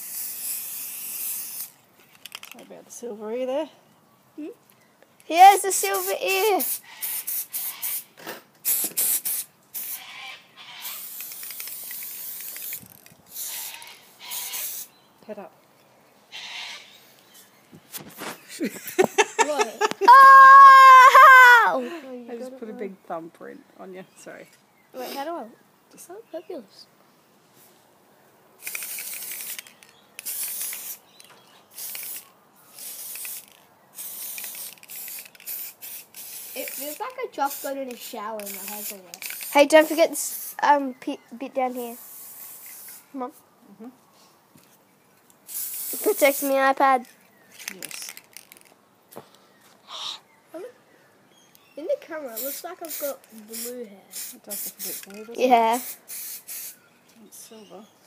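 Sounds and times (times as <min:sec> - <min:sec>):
aerosol spray hissing: 0:00.0 - 0:01.8, 0:05.8 - 0:10.0, 0:10.8 - 0:15.0, 0:28.6 - 0:31.0, 0:31.8 - 0:40.7, 0:41.7 - 0:43.2, 0:45.5 - 0:46.6, 0:52.3 - 0:56.8.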